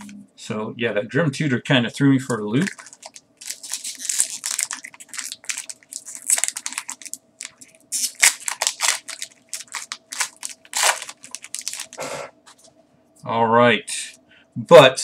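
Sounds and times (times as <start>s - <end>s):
foil wrapper crinkling and tearing: 2.5s - 12.0s.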